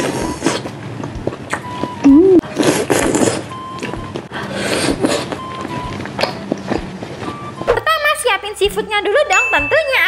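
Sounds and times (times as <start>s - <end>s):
wet chewing: 0.0s - 7.8s
mouth clicks and smacks: 0.5s - 4.0s, 5.0s - 7.8s.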